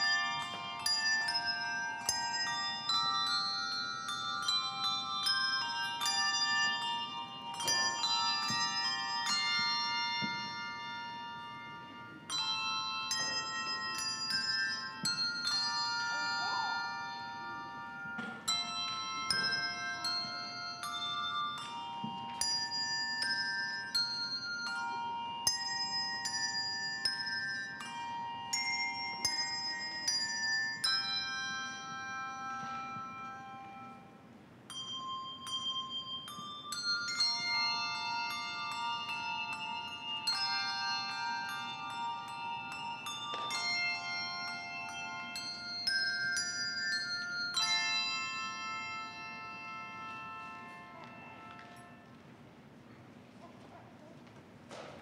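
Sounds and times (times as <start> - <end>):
handbell choir ringing chords: 0.0 - 53.4.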